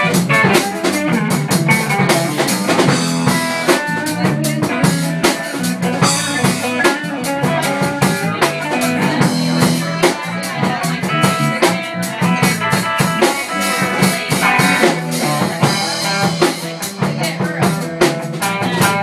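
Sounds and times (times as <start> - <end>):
drum kit beat: 0.0 - 19.0
electric bass: 0.0 - 19.0
electric guitar: 0.0 - 19.0.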